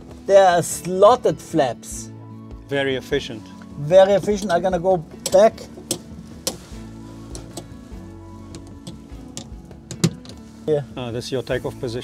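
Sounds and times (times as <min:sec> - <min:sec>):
soft background music: 0:00.0 - 0:12.0
flap handle clicking: 0:07.3 - 0:07.8, 0:08.5 - 0:10.4.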